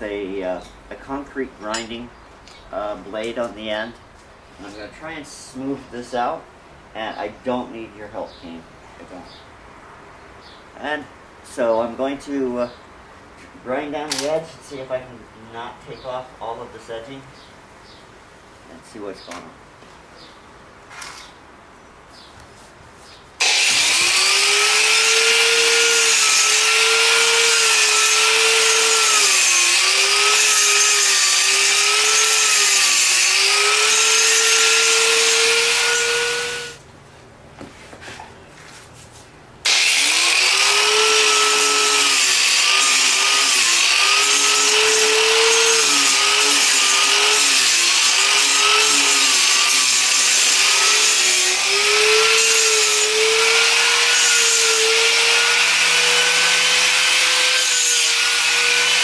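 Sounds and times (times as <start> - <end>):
angle grinder grinding concrete: 23.4 - 36.8, 39.7 - 59.0.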